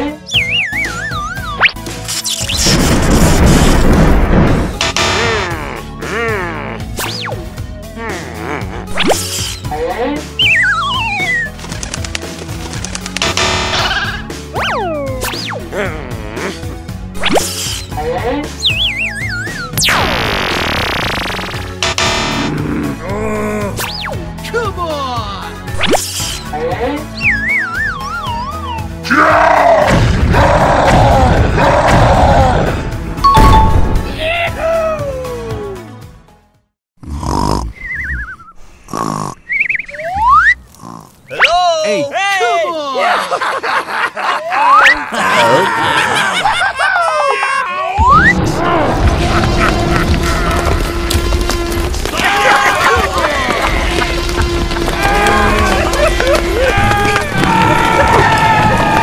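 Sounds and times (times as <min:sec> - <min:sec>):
background music: 0:00.0 - 0:38.1, 0:39.6 - 0:59.0
short sound effects: 0:33.3 - 0:34.2
falling warbling whistle: 0:37.8 - 0:38.6, 0:39.5 - 0:40.6
cartoon voices snickering: 0:44.4 - 0:47.5.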